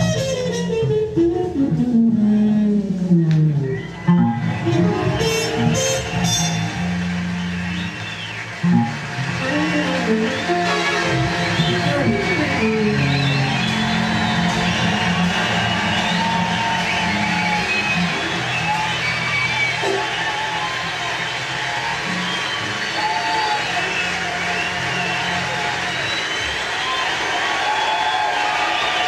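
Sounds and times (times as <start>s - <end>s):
jazz music: 0.0s - 26.2s.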